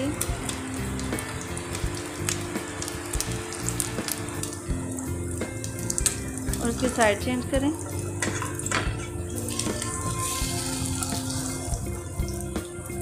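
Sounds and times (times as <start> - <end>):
sandwich sizzling in oil: 0.0 - 13.0.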